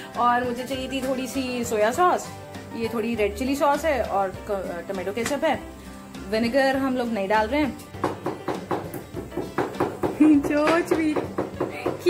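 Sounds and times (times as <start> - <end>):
background music: 0.0 - 12.0
pestle pounding in ceramic mortar: 8.0 - 12.0.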